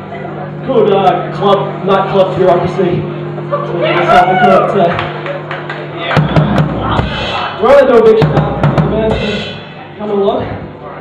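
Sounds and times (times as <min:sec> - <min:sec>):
live drum kit playing: 0:06.1 - 0:10.0
cymbal crashes: 0:06.2 - 0:07.6, 0:08.3 - 0:10.0.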